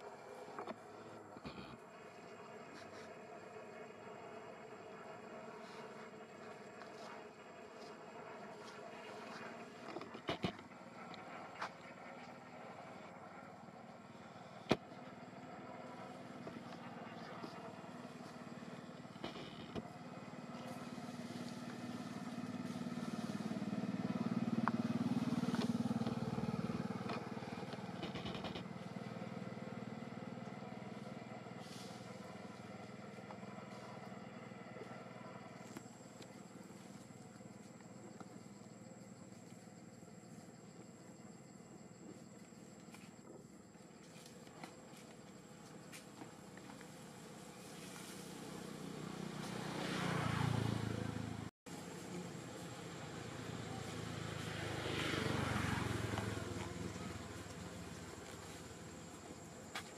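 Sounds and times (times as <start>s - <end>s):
vehicle engine hum passing by: 0.0s - 43.1s, 43.7s - 59.9s.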